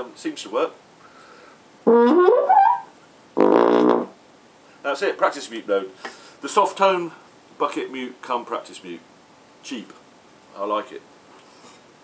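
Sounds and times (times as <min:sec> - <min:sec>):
muted trombone notes: 0:01.9 - 0:04.2.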